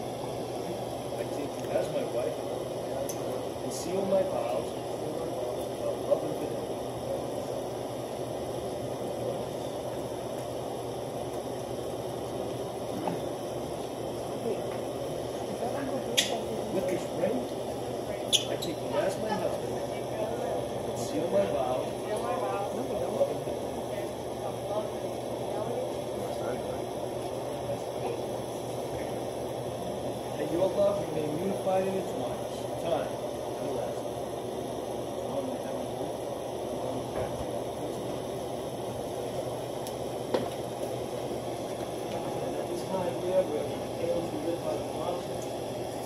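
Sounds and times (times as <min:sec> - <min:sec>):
steady low hum: 0:00.0 - 0:46.0.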